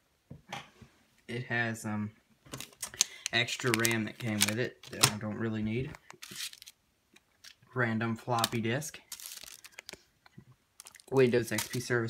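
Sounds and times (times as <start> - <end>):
crinkly rustling: 2.5 - 6.8, 8.3 - 10.1, 10.8 - 12.0.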